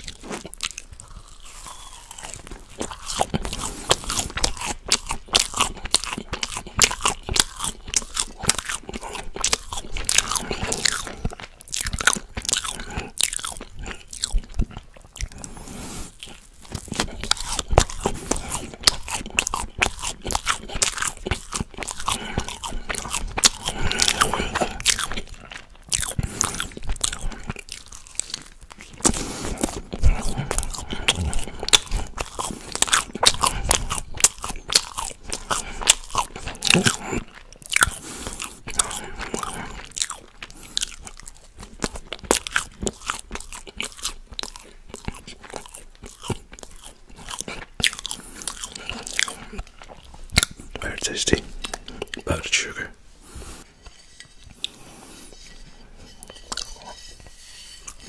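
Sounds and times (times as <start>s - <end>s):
wet mouth chewing: 0.0s - 58.0s.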